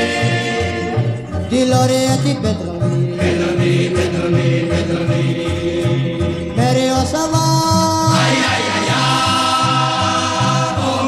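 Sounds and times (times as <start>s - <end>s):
choir singing: 0.0s - 1.4s, 3.0s - 6.9s, 8.0s - 11.0s
pulsing bass line: 0.0s - 11.0s.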